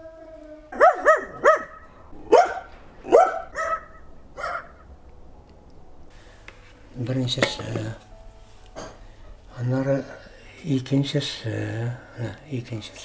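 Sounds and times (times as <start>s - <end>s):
dog barking: 0.8s - 4.8s.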